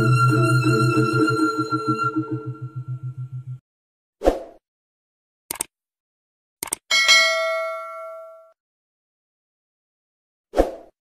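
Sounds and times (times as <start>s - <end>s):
notification bell ding: 6.9s - 8.5s.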